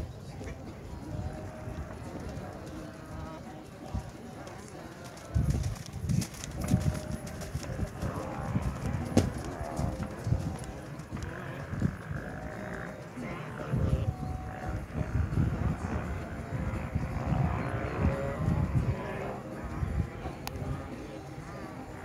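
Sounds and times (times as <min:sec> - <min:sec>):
horse hoofbeats on dirt: 0:01.1 - 0:19.4.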